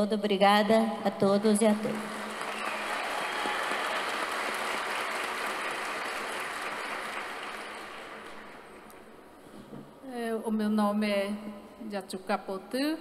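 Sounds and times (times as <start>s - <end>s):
audience applauding: 2.0s - 8.9s.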